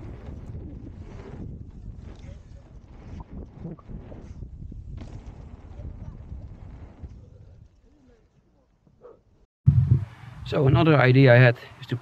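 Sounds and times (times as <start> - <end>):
wind on microphone: 0.0 - 7.8, 9.7 - 10.9
bike tyres rolling on dirt: 0.0 - 8.3.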